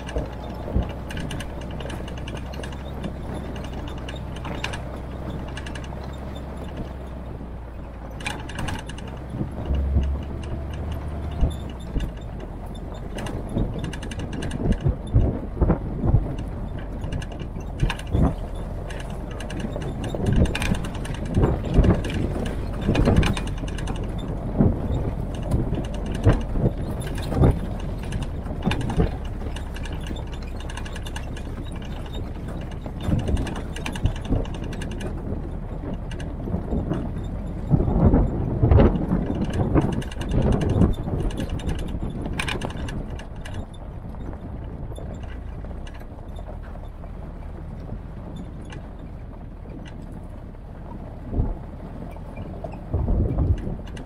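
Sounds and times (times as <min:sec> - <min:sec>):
low engine drone: 0:00.0 - 0:54.0
vehicle body rattling over ruts: 0:00.0 - 0:54.0.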